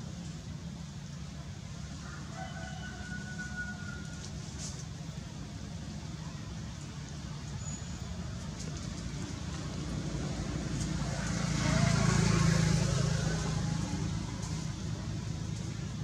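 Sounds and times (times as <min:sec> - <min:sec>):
vehicle passing with low rumble: 0:00.0 - 0:16.0.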